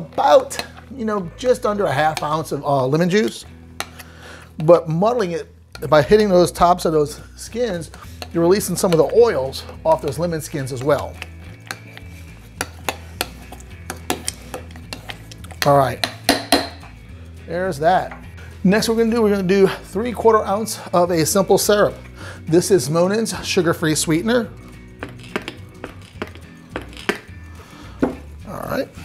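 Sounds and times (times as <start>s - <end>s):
soft background music: 0.0s - 29.0s
muddler pounding lemon in tin: 7.8s - 17.0s, 24.9s - 27.3s
knocks against metal tin: 16.0s - 16.9s.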